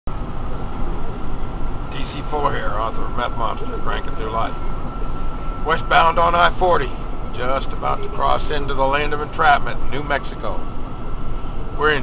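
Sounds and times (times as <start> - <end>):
engine and tyre road drone: 0.1 - 12.0
faint high whine: 0.1 - 12.0.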